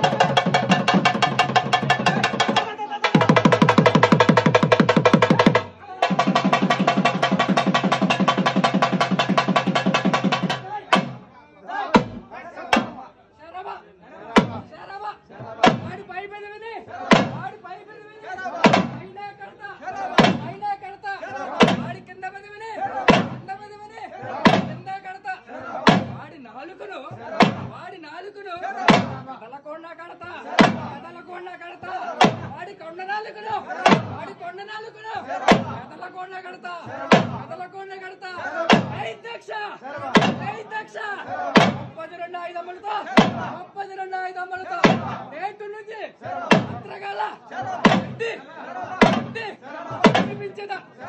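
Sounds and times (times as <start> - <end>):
single drum beats: 0.0 - 11.3, 11.9 - 13.0, 15.6 - 16.0, 21.6 - 22.0, 40.1 - 40.6, 41.6 - 42.0, 43.2 - 43.6, 44.8 - 45.2, 46.5 - 46.9, 47.6 - 48.2, 48.8 - 50.5
voices: 0.0 - 51.0.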